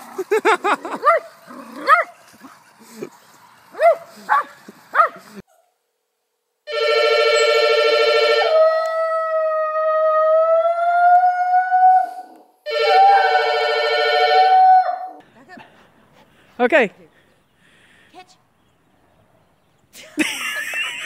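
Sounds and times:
telephone ringing: 0:06.7 - 0:08.5.

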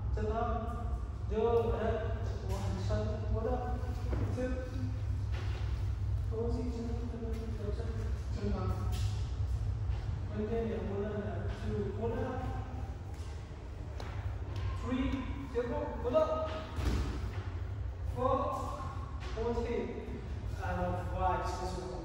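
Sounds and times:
man speaking: 0:00.0 - 0:05.2, 0:06.2 - 0:09.1, 0:10.3 - 0:13.0, 0:14.6 - 0:16.8, 0:18.1 - 0:22.0
steady low hum: 0:00.0 - 0:22.0.

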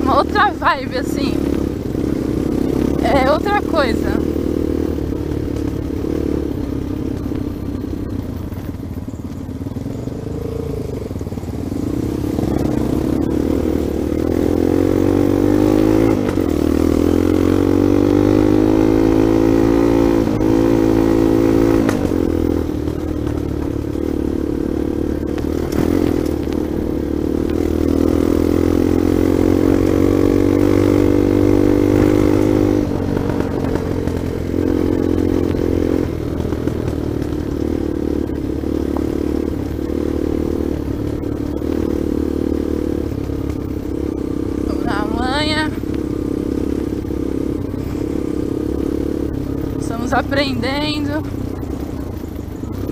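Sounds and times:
dirt bike engine accelerating: 0:00.0 - 0:52.9
bike knocking on rough track: 0:22.8 - 0:23.9.

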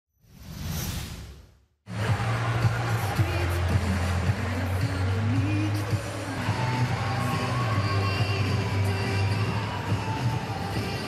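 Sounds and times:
music: 0:01.9 - 0:11.0.

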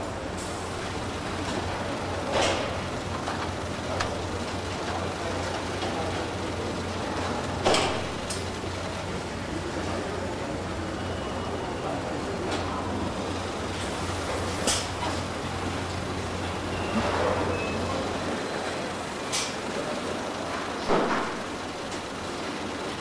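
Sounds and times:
machinery hum: 0:00.0 - 0:23.0.

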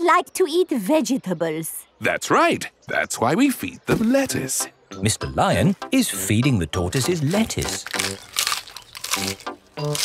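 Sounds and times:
cartoon crunching bites: 0:07.0 - 0:10.0.

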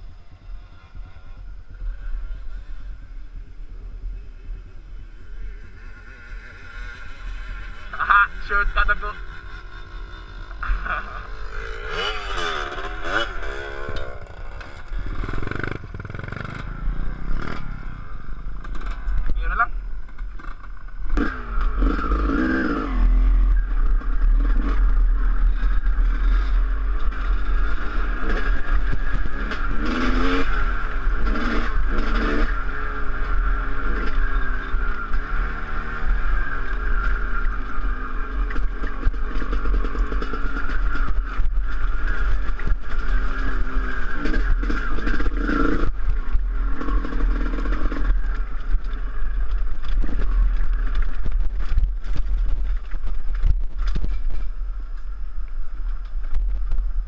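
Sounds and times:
dirt bike engine revving: 0:04.9 - 0:52.5
wind rumble on microphone: 0:36.4 - 0:57.0.

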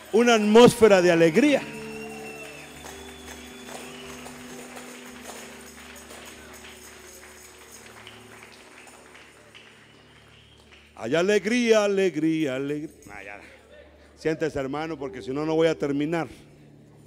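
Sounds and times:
electronic keyboard chords: 0:00.0 - 0:11.0.

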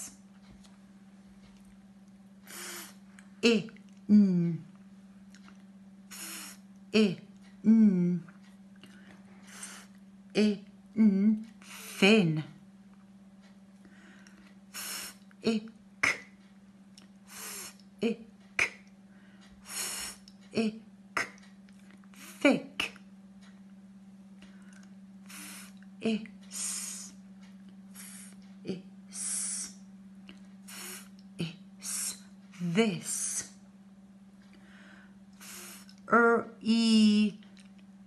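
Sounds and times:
low hum: 0:00.0 - 0:38.0.

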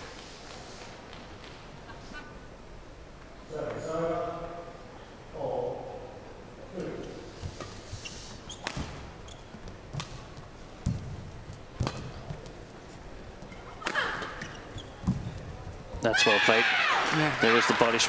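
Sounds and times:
rackets striking shuttlecock: 0:08.6 - 0:12.8, 0:13.4 - 0:15.3
footfalls thudding on court: 0:08.7 - 0:12.6, 0:13.9 - 0:16.0
crowd noise: 0:09.0 - 0:18.0.

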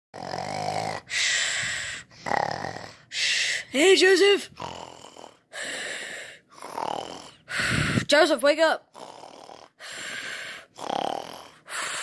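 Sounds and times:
person mock snoring: 0:00.2 - 0:03.1, 0:04.4 - 0:08.1, 0:08.9 - 0:12.0.

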